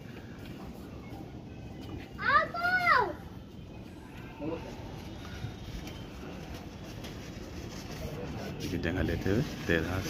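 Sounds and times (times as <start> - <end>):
child shouting: 2.2 - 3.3.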